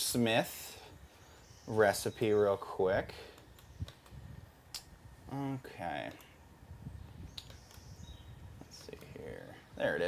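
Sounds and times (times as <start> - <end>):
faint laptop clicks: 3.3 - 4.2, 7.3 - 7.9.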